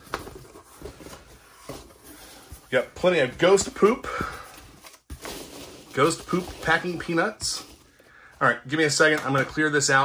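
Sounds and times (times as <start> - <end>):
foam packing peanuts rustling: 0.6 - 8.2.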